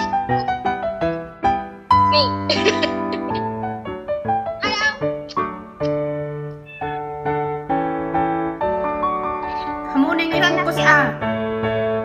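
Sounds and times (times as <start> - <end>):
background piano music: 0.0 - 12.0
kitten meowing: 4.6 - 5.5, 6.6 - 7.1.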